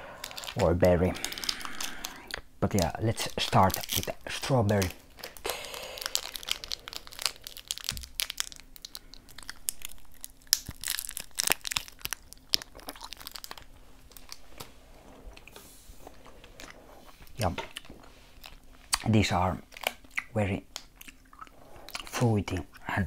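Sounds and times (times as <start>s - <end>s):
candy wrapper crinkling: 0.0s - 14.7s, 16.1s - 21.2s
person chewing candy: 0.0s - 14.7s, 15.3s - 22.2s.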